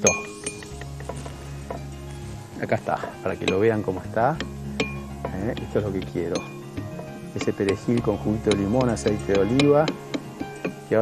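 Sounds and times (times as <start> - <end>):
metal utensil clinking ceramic bowl: 0.0 - 1.9, 3.1 - 11.0
soft background music: 0.0 - 11.0.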